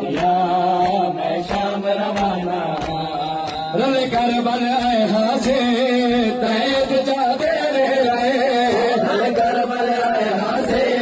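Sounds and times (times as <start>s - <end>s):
man chanting through loudspeaker: 0.0s - 11.0s
people beating their chests: 0.0s - 11.0s.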